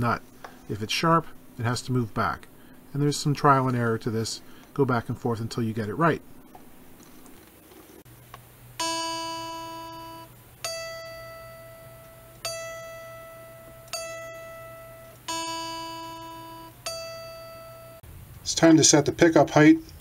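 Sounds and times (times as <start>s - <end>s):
low electrical hum: 0.0s - 20.0s
electric guitar string plucked: 8.8s - 18.0s.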